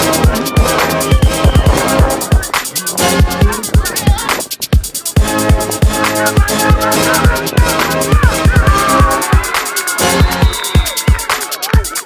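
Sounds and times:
deep bass-drum hits: 0:00.0 - 0:09.5
fast hi-hats: 0:00.0 - 0:12.0.

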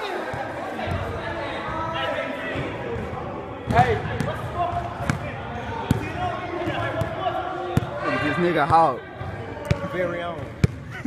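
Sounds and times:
players' voices: 0:00.0 - 0:11.0
basketball bouncing on hard court: 0:06.6 - 0:07.1.

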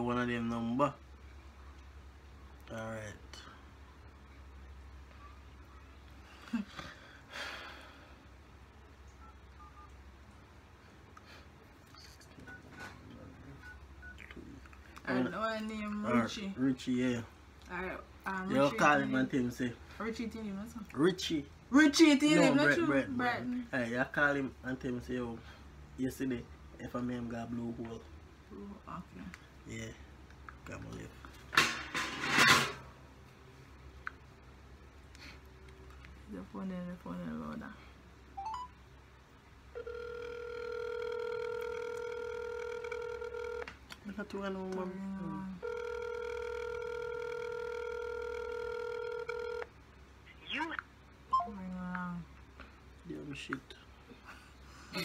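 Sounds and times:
phone keypad beeps: 0:09.2 - 0:09.9, 0:38.4 - 0:38.7
phone ringback tone: 0:38.4 - 0:38.7, 0:39.7 - 0:43.7, 0:45.6 - 0:49.7.

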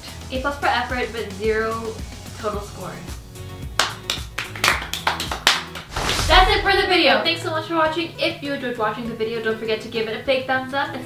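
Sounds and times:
soft background music: 0:00.1 - 0:11.0
people clapping: 0:03.8 - 0:05.9.

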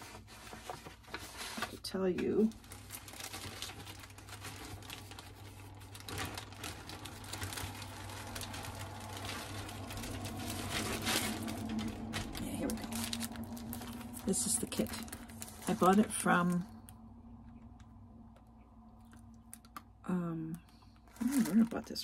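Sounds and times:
papers rustling: 0:00.0 - 0:16.7
plastic packaging crinkling: 0:00.0 - 0:17.9, 0:19.0 - 0:20.0, 0:20.6 - 0:22.0.

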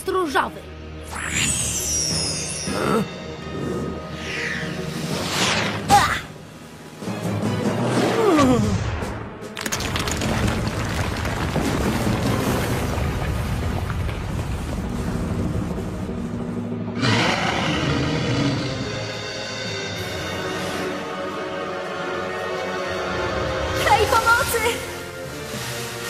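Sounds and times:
dramatic cartoon music: 0:00.0 - 0:09.6, 0:15.5 - 0:26.0
ice shattering and crashing: 0:09.6 - 0:14.8.

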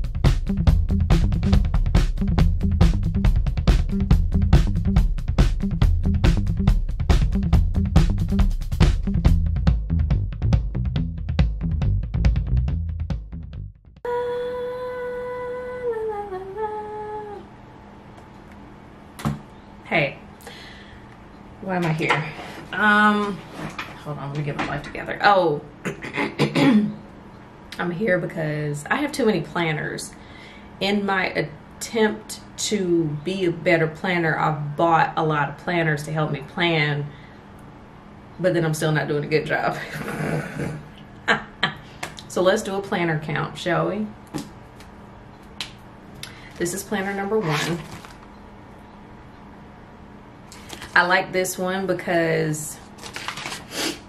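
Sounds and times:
woman humming: 0:14.1 - 0:17.5.

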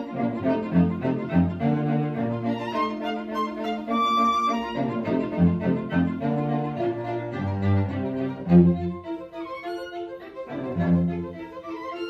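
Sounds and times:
cello playing low line: 0:00.0 - 0:12.0
violins and viola bowing: 0:00.0 - 0:12.0.

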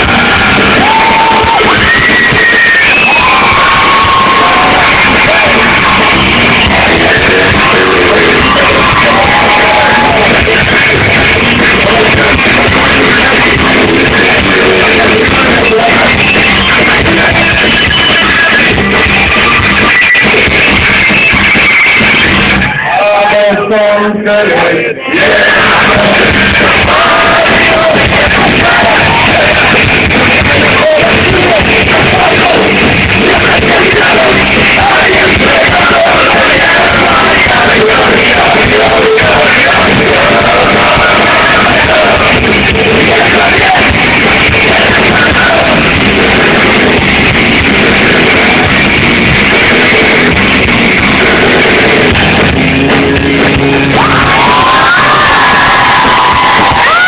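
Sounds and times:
electric guitar: 0:00.0 - 0:24.1, 0:24.7 - 0:57.0
loud rock band playing: 0:00.0 - 0:24.5, 0:25.1 - 0:57.0.

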